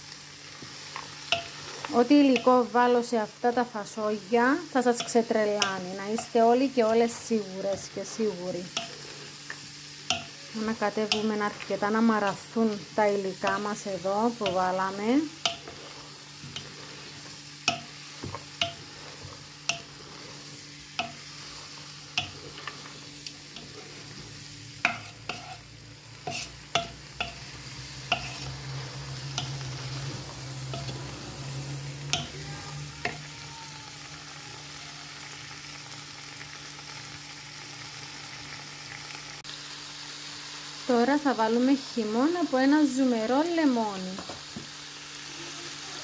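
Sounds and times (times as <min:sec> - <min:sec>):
vegetables sizzling in oil: 0:00.0 - 0:46.0.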